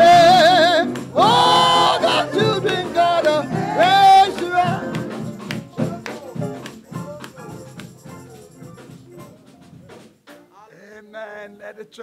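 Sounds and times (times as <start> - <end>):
gospel choir singing: 0.0 - 10.0
keyboard accompaniment: 0.0 - 10.7.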